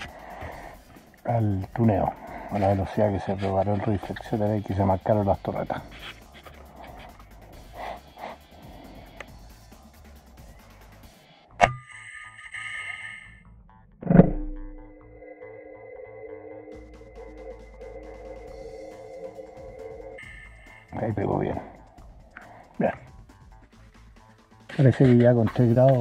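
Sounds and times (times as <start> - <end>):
music of sustained tones: 14.6 - 24.9.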